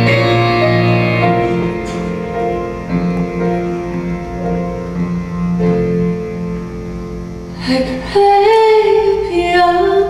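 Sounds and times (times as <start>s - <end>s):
sustained instrumental chords: 0.0s - 8.3s.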